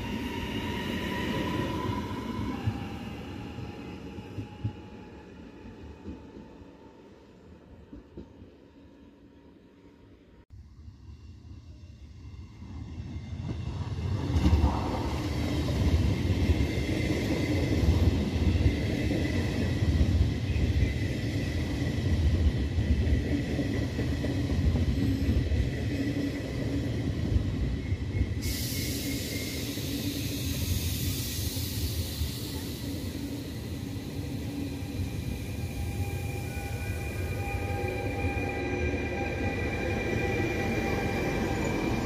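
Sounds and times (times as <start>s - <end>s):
train wheels rumbling on rails: 11.7s - 42.0s
high hiss: 28.4s - 36.5s.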